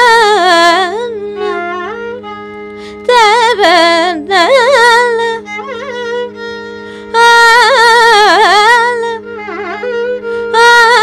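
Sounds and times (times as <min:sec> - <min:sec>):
woman singing ornamented phrases: 0:00.0 - 0:01.7, 0:03.0 - 0:05.8, 0:07.1 - 0:09.8, 0:10.5 - 0:11.0
violin: 0:00.0 - 0:11.0.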